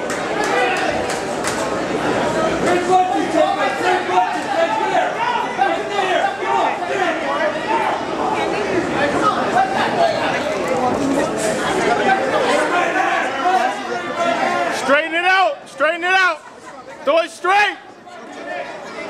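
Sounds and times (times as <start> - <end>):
crowd talking and shouting: 0.0 - 19.0.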